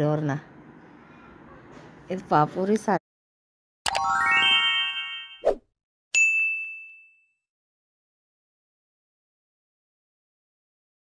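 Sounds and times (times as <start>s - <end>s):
notification bell ding: 3.9s - 5.4s, 6.2s - 7.4s
rising run of chime notes: 3.9s - 5.5s.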